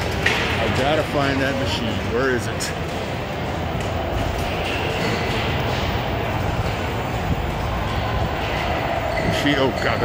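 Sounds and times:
busy arcade hall din: 0.0s - 10.0s.

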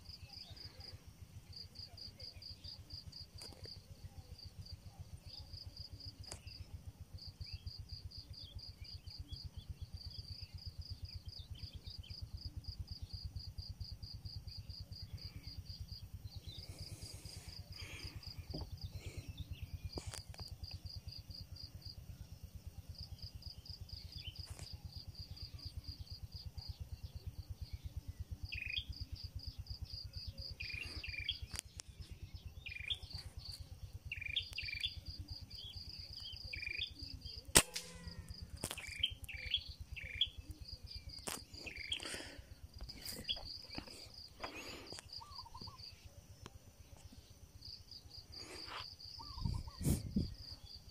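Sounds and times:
insect chirping: 0.0s - 50.9s
birds chirping: 23.7s - 50.9s
sharp crack: 37.4s - 39.4s.

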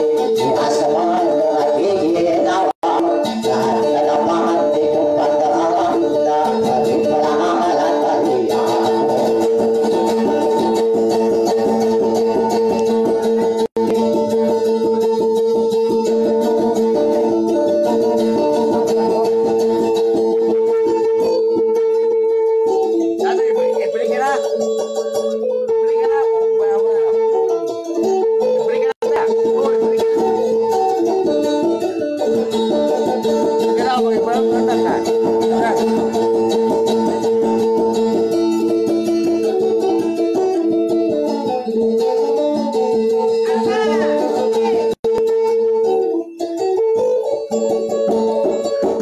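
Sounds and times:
plucked string instrument: 0.0s - 49.0s.

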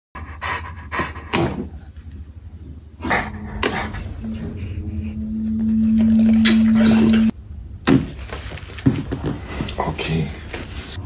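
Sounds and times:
dog panting and snuffling: 0.2s - 1.9s
steady low humming tone: 2.1s - 7.8s.

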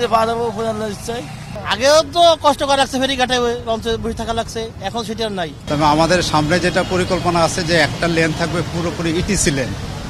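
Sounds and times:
man speaking: 0.0s - 9.8s
road traffic: 0.0s - 10.0s.

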